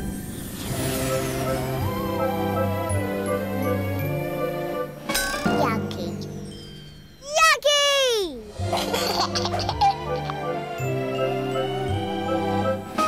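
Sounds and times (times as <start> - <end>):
cheerful cartoon music: 0.6 - 13.0
baby vocal exclamation: 7.2 - 8.5.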